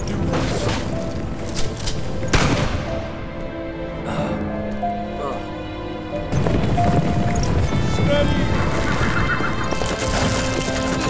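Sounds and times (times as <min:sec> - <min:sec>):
galloping hooves: 0:06.2 - 0:11.0
wooden stagecoach rolling: 0:06.3 - 0:11.0
horse whinnying: 0:08.8 - 0:10.2.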